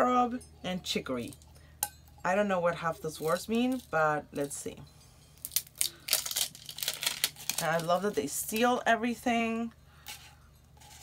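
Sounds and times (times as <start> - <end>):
packaging crackling: 5.4 - 8.2.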